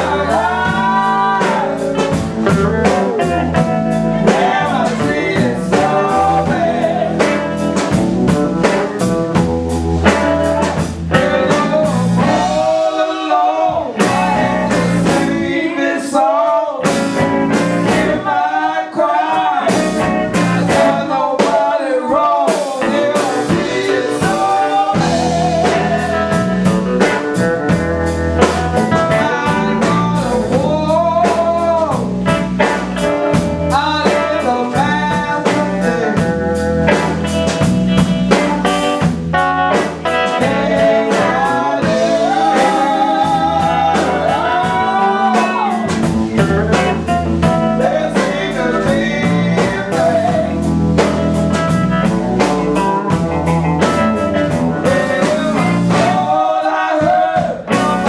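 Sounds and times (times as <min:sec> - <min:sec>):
person singing: 0:00.0 - 0:09.4, 0:10.6 - 0:27.8, 0:28.4 - 0:37.2, 0:39.7 - 0:58.0
drum kit steady beat: 0:00.0 - 0:13.0, 0:13.7 - 0:15.7, 0:16.8 - 0:18.5, 0:19.2 - 0:21.8, 0:22.4 - 0:58.0
electric guitar: 0:00.0 - 0:21.7, 0:22.4 - 0:58.0.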